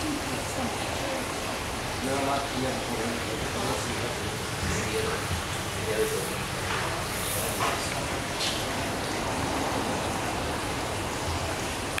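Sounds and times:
running water: 0.0 - 12.0.

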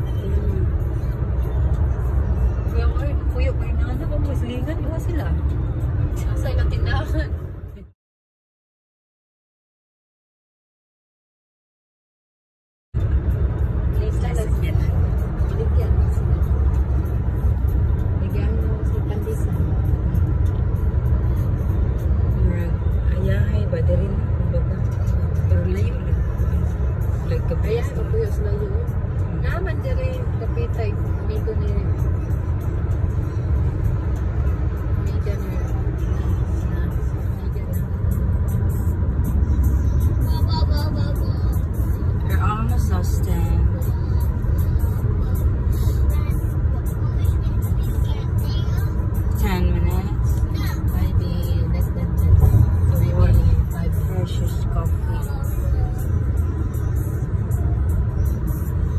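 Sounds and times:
car road and engine rumble: 0.0 - 8.0, 12.9 - 58.9.

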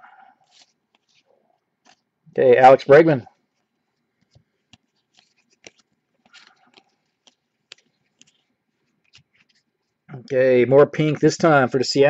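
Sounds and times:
trading cards flipped by hand: 0.4 - 2.1, 3.5 - 10.1.

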